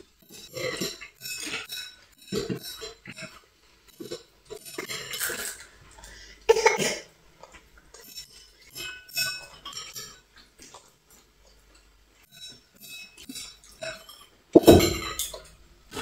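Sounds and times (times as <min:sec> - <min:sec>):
utensils clinking on ceramic bowls: 0:00.0 - 0:05.8, 0:07.9 - 0:15.6.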